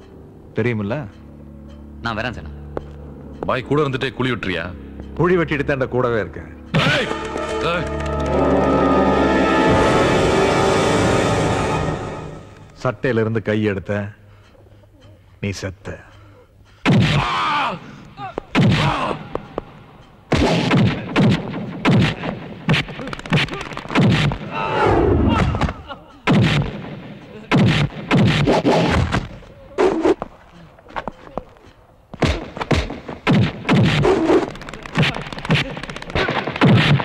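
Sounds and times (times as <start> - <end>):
heavy punch sound effect: 20.3 - 23.0, 26.3 - 29.3.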